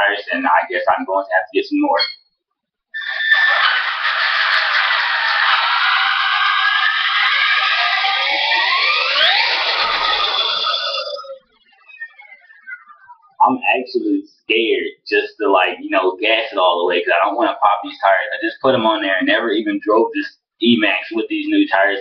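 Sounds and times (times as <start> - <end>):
electric motor whining: 4.0 - 12.8.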